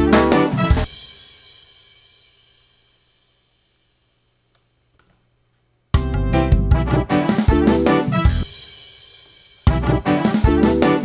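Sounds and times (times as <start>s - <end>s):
reggae beat: 0.0s - 1.6s, 6.0s - 11.0s.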